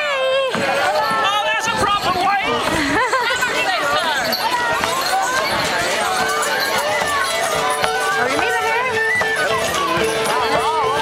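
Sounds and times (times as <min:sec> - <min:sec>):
crowd talking: 0:00.0 - 0:11.0
tambourines jingling: 0:00.6 - 0:11.0.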